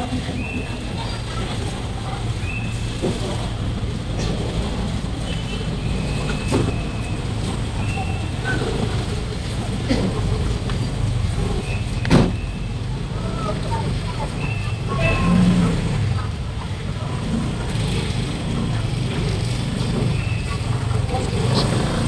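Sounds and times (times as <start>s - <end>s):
car and motorcycle engines: 0.0s - 22.0s
scattered voices: 12.8s - 22.0s.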